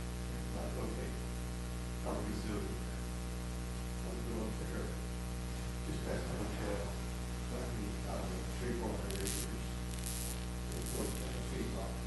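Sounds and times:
electrical mains hum: 0:00.0 - 0:12.0
hissing static bursts: 0:08.7 - 0:12.0.

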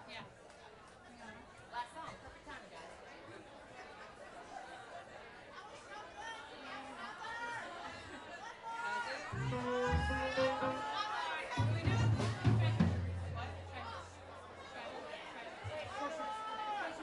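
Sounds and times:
people chattering: 0:00.0 - 0:17.0.

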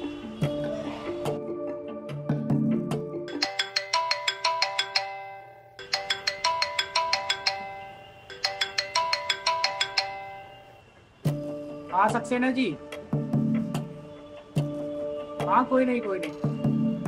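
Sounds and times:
low background music: 0:00.0 - 0:17.0
phone ringtone melody: 0:02.6 - 0:10.9.

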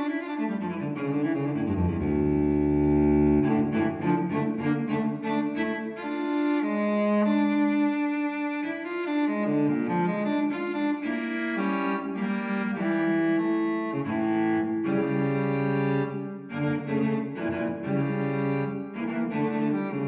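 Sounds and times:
instrumental music with held notes: 0:00.0 - 0:20.0.

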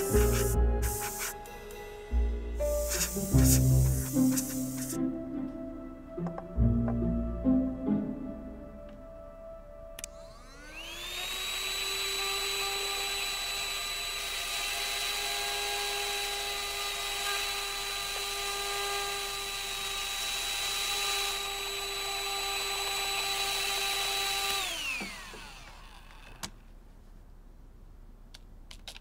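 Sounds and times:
cd drive motor whine: 0:24.2 - 0:26.5.

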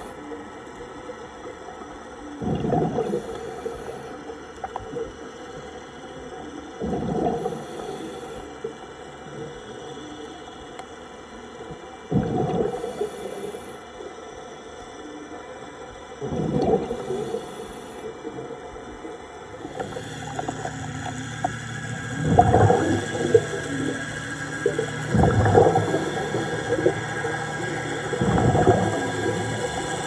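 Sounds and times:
steady many-toned hum: 0:00.0 - 0:30.0
submarine thrusters humming: 0:00.0 - 0:30.0
underwater exhaled bubbles: 0:00.0 - 0:30.0.

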